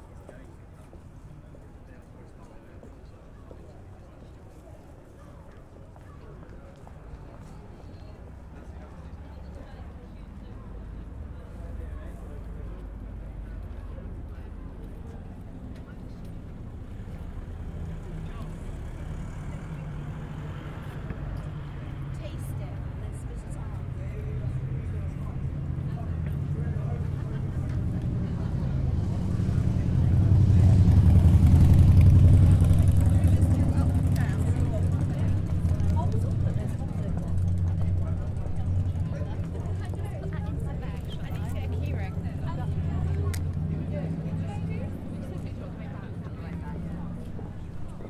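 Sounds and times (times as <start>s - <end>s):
indistinct voices of passers-by: 0.0s - 48.0s
traffic engine rumble: 0.0s - 48.0s.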